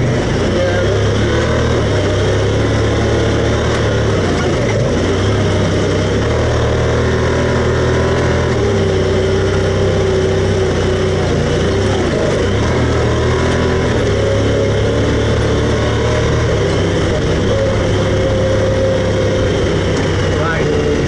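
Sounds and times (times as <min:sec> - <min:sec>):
utility vehicle engine running: 0:00.0 - 0:21.0.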